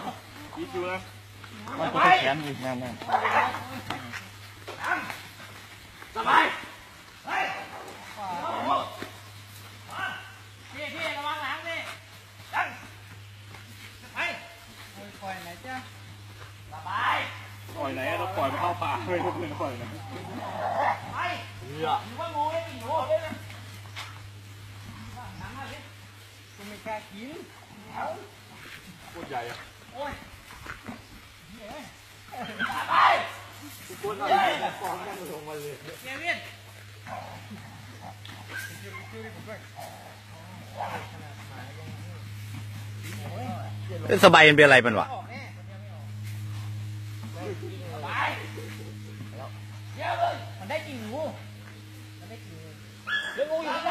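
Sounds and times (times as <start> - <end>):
steady low hum: 0.0 - 53.9
dog yelp: 53.0 - 53.9.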